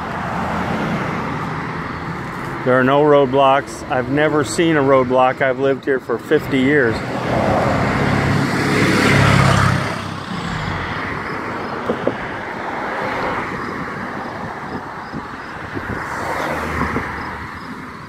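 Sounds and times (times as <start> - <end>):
steady street traffic: 0.0 - 18.0
vehicle passing close by: 7.1 - 14.9.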